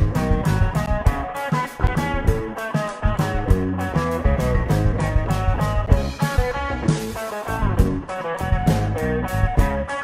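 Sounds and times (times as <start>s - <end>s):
drum beat with cymbals: 0.0s - 10.0s
electric guitar lead line: 0.0s - 10.0s.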